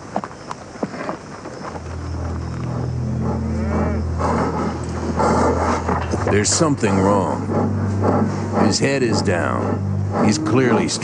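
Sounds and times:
cattle bawling: 1.7 - 11.0
steady low rumble: 1.7 - 11.0.

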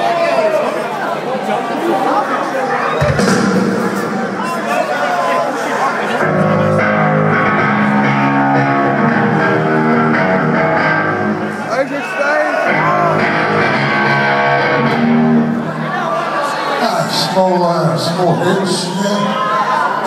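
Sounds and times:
amplified electric guitar: 6.1 - 11.7, 12.6 - 15.9.

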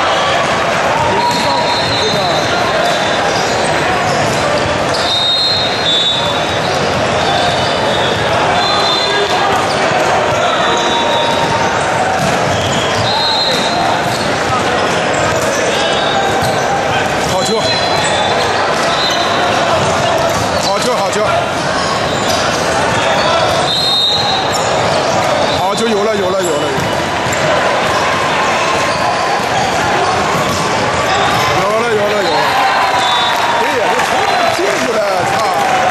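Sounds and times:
babble of voices: 0.0 - 35.9
sneakers squeaking on court: 1.0 - 33.3.

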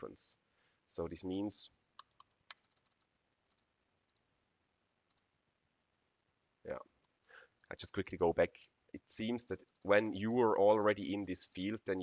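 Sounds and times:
faint computer clicks: 9.6 - 12.0.

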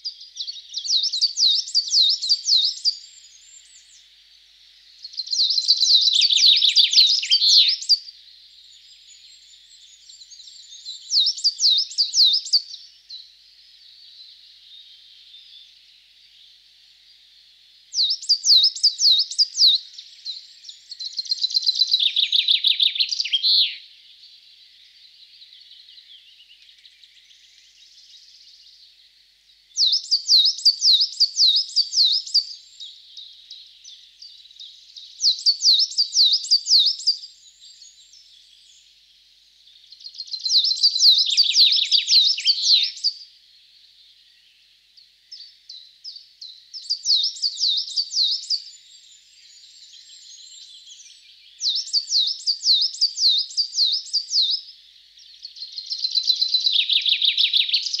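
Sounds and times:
faint outdoor background noise: 0.0 - 58.0
songbird singing: 0.0 - 58.0.

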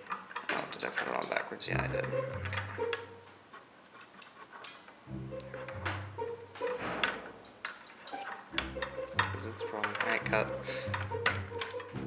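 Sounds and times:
background music with plucked bass: 1.7 - 3.1, 5.1 - 6.8, 8.5 - 12.0.

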